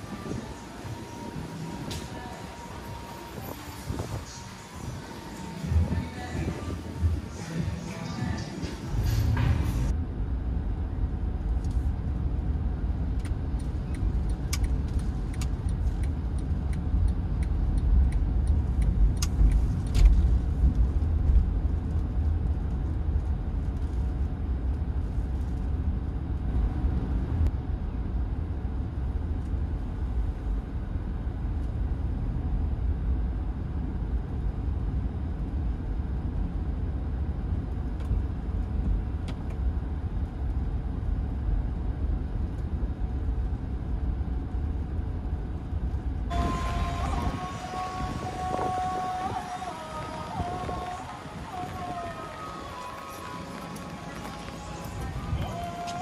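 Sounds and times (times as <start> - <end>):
car cabin road and engine rumble: 0.0 - 56.0.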